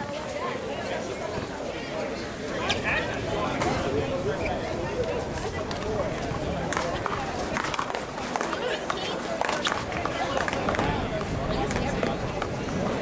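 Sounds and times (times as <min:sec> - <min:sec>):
voices chattering: 0:00.0 - 0:13.0.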